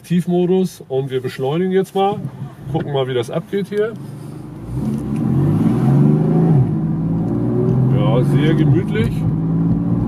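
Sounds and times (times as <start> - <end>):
car engine accelerating: 3.7 - 10.0.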